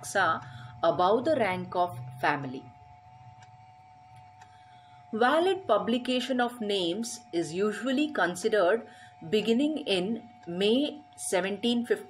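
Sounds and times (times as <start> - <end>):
steady high-pitched hum: 0.0 - 12.0
faint ticks: 3.2 - 4.6.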